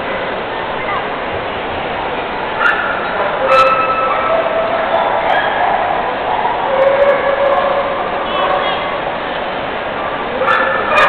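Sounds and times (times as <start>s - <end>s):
crowd noise in large hall: 0.0s - 11.0s
dogs barking and yipping: 2.6s - 8.8s, 10.2s - 11.0s.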